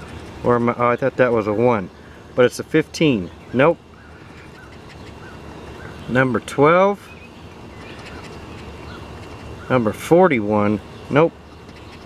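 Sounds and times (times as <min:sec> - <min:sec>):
coin scratching lottery ticket: 0:00.0 - 0:00.5
steady background hiss: 0:00.0 - 0:12.0.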